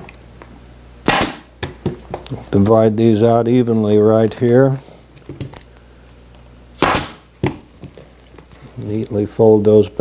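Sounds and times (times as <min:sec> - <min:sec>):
air hiss: 0:01.0 - 0:01.5, 0:06.7 - 0:07.3
staple gun firing: 0:01.1 - 0:01.5, 0:06.8 - 0:07.2.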